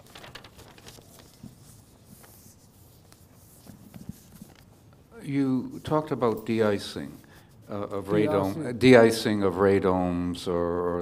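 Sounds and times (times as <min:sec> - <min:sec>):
people rustling and shuffling: 0:00.0 - 0:08.8.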